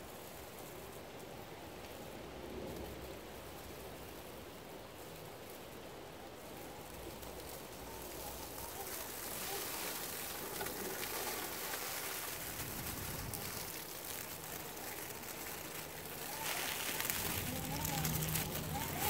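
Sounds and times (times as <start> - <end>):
tyres rustling dry leaves: 0.0 - 19.0.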